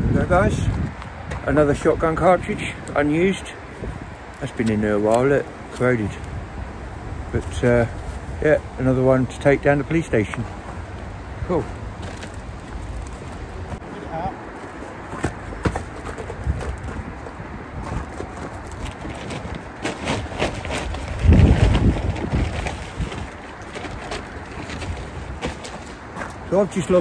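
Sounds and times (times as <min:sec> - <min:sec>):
wind rumbling on microphone: 0:00.0 - 0:14.5, 0:15.3 - 0:26.6.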